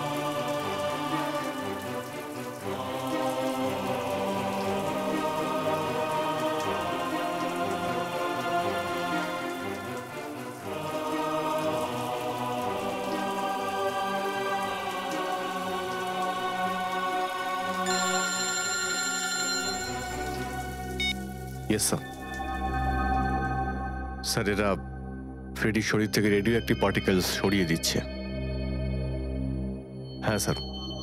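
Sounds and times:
shower water spraying: 0:00.0 - 0:22.4
background music chords: 0:00.0 - 0:31.0.

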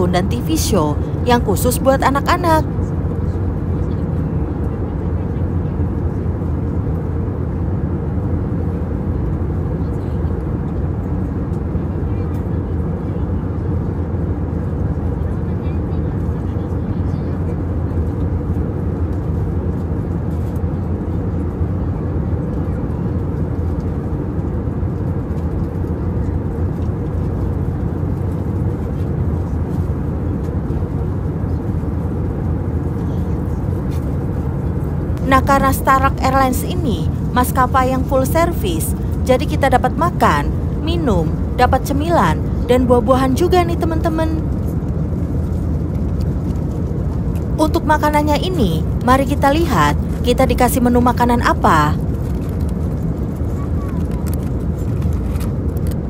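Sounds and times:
airliner cabin rumble: 0:00.0 - 0:56.0.

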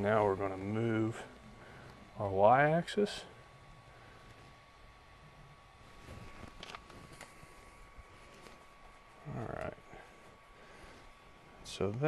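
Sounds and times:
faint high hum: 0:00.0 - 0:12.0.

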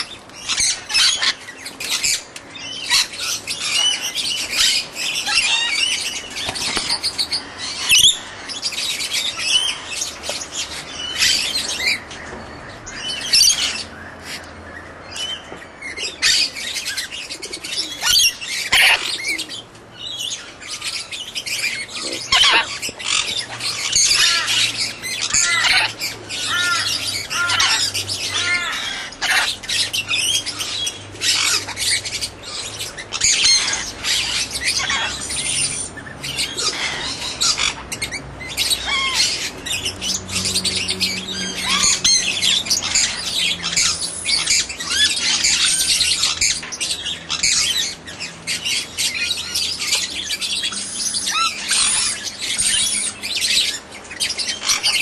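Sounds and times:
birds chirping and squawking: 0:00.0 - 0:55.0.

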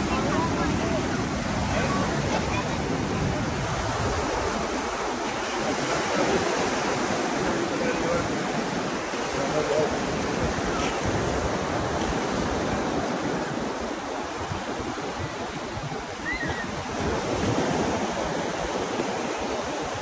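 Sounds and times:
small waves washing on beach: 0:00.0 - 0:20.0
wind buffeting microphone: 0:00.0 - 0:20.0.

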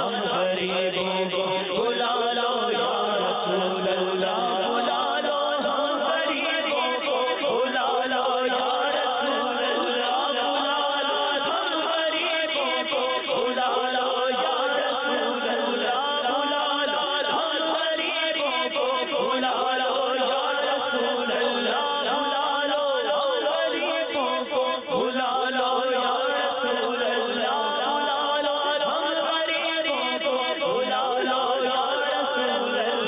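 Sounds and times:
men singing devotional song: 0:00.0 - 0:33.0.

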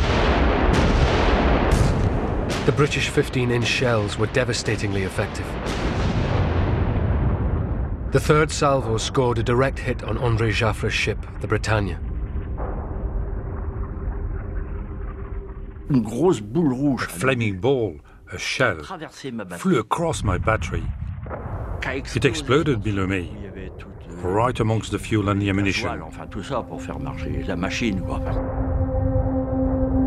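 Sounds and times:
muffled rumble of shellfire: 0:00.0 - 0:09.1, 0:10.1 - 0:16.2, 0:20.2 - 0:21.9
naval gunfire and explosions: 0:00.0 - 0:18.7, 0:20.0 - 0:30.0.

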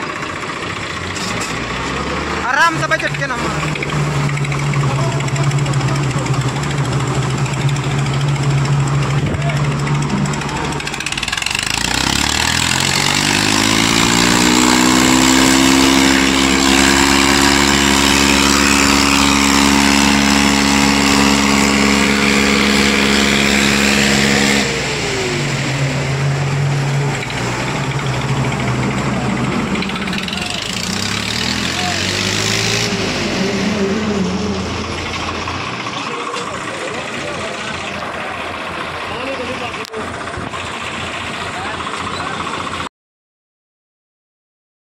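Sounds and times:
tractor diesel engines revving: 0:00.0 - 0:42.9.

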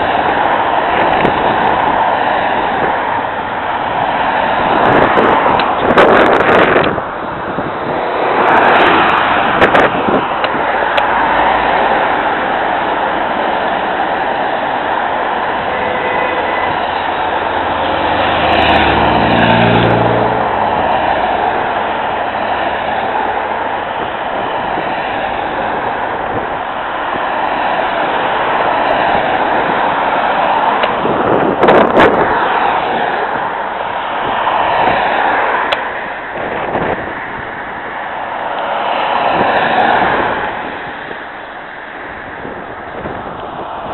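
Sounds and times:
cars and vans driving past: 0:00.0 - 0:43.9.

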